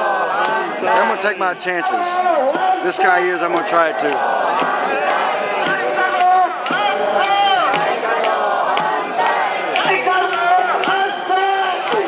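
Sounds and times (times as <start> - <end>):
crowd chanting and shouting: 0.0 - 12.0
steady drum beat: 0.0 - 12.0.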